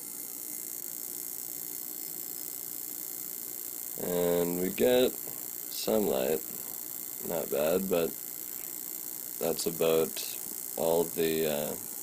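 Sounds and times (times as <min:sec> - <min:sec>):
electrical buzz and hiss: 0:00.0 - 0:12.0.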